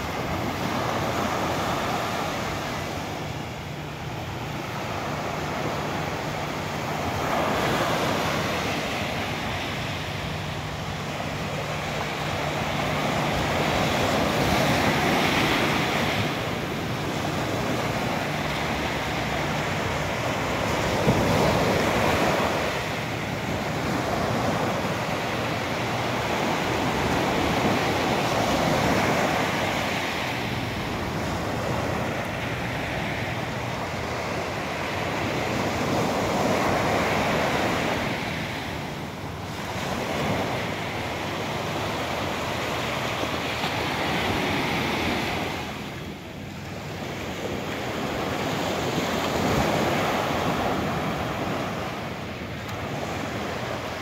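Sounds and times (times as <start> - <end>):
sea waves: 0.0 - 54.0.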